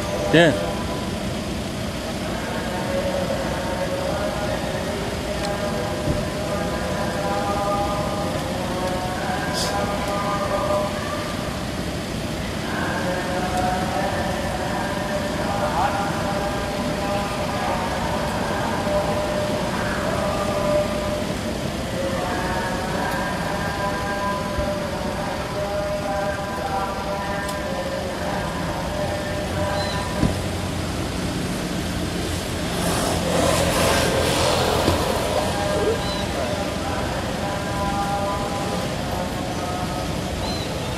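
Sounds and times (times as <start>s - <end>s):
indistinct distant voices: 0.0s - 40.9s
motor vehicle passing: 30.3s - 37.4s.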